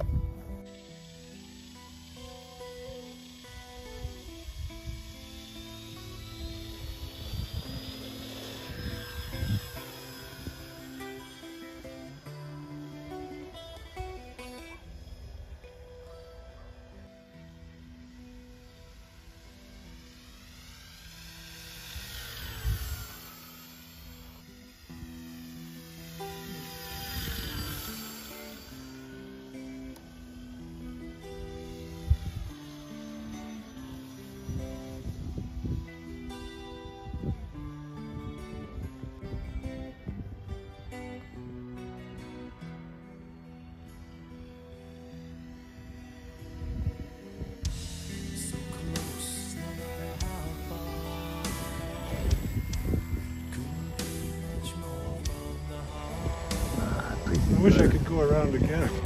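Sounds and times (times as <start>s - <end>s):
background music: 0.0s - 59.0s
model plane motor whine: 0.0s - 59.0s.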